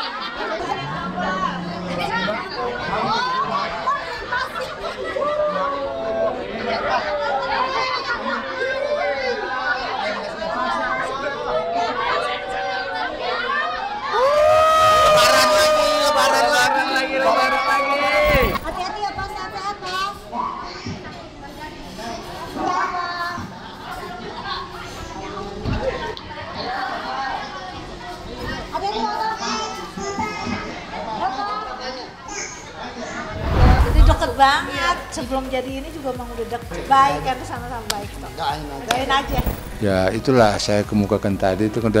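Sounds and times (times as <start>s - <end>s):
crowd chatter: 0.0s - 42.0s
people talking indistinctly: 32.0s - 42.0s
background music: 34.1s - 42.0s.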